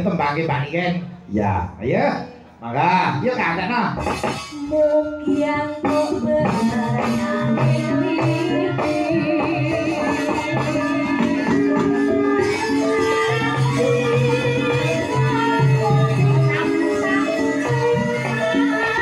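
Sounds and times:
gamelan drum strokes: 3.3s - 19.0s
woman singing: 4.5s - 19.0s.

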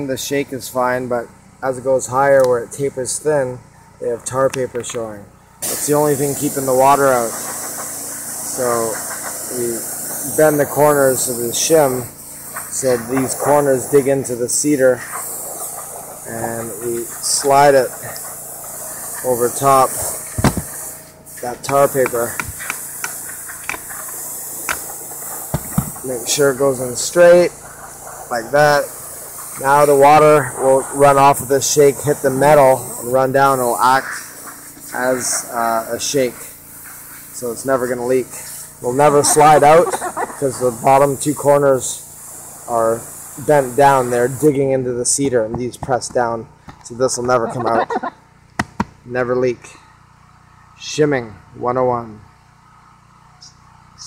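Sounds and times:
person speaking: 0.0s - 7.4s, 16.2s - 18.2s, 19.2s - 20.7s, 21.4s - 23.9s, 25.6s - 27.6s, 28.2s - 34.1s, 37.4s - 41.9s, 42.7s - 48.1s
faint low background hum: 0.0s - 54.0s
steady hiss: 0.0s - 54.0s.

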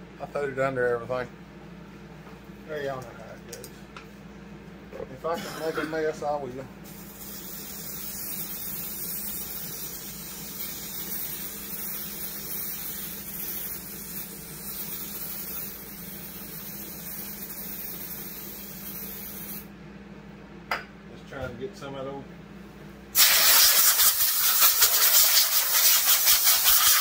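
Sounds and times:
aerosol spray can hissing: 6.9s - 19.7s, 23.2s - 27.0s.

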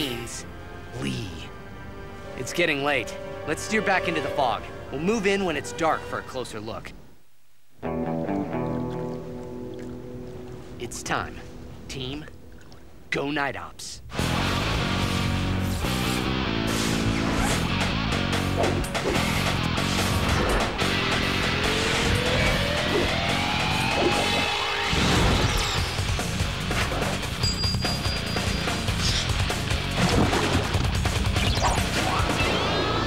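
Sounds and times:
driving action music: 14.1s - 33.0s
electric zap effects: 15.0s - 17.7s, 21.6s - 26.1s.

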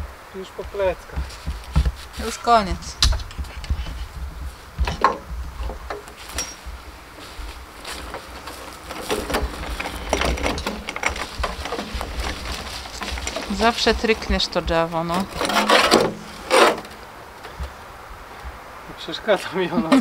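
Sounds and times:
metal wheelbarrow knocking and rattling: 0.7s - 17.8s.

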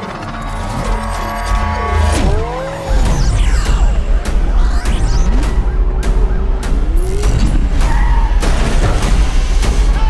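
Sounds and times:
car engines: 0.0s - 9.7s
trailer music: 0.0s - 10.0s.

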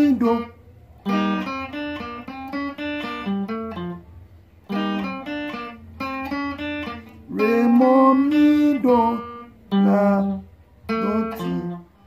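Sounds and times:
electric guitar melody: 0.0s - 12.0s.

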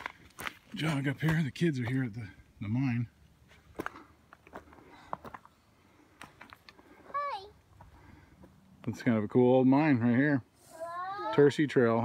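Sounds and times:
footsteps on rocky forest trail: 0.0s - 2.3s, 3.3s - 8.6s
child calling high-pitched: 7.1s - 7.6s, 10.6s - 11.5s.

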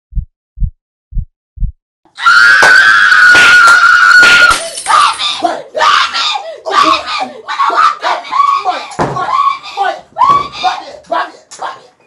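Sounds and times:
heartbeat lub-dub: 0.1s - 1.8s.

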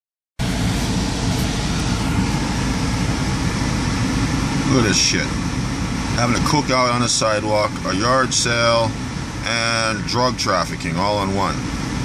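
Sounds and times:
low engine rumble: 0.4s - 12.0s.

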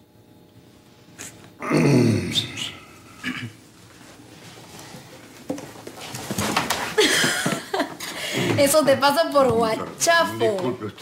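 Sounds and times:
man's guttural vocal noise: 1.6s - 3.5s.

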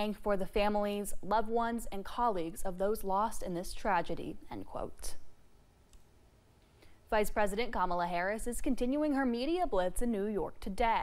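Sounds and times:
woman's voice: 0.0s - 5.3s, 7.1s - 11.0s.

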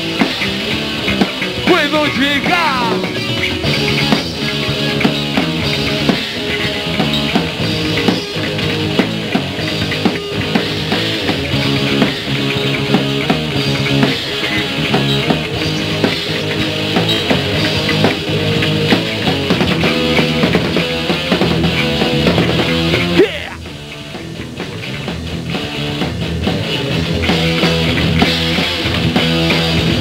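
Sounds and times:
electric guitar chords: 0.0s - 30.0s.

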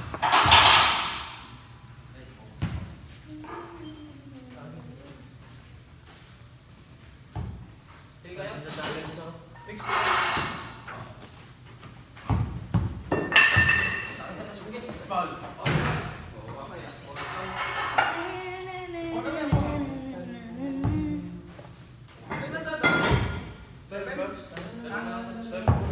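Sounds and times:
basketball bouncing: 12.3s - 13.7s.

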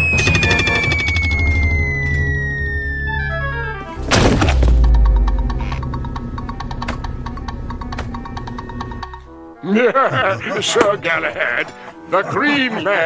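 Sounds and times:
descending cartoon whistle: 0.0s - 4.0s
low rumble: 1.5s - 9.3s
heavy crash: 3.9s - 6.1s
music with ticking beat: 4.8s - 9.4s.

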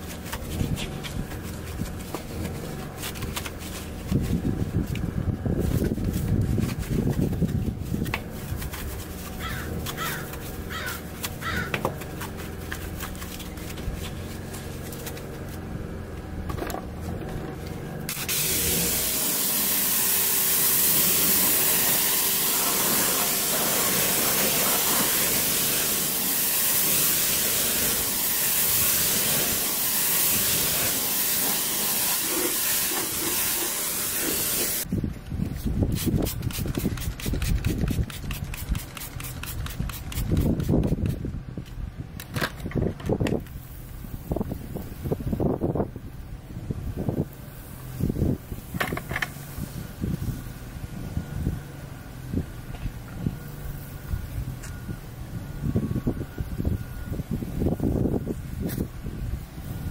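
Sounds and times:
pressure washer spraying: 5.6s - 15.7s, 18.1s - 34.9s, 35.9s - 41.2s
quick sharp strokes: 35.6s - 41.2s.

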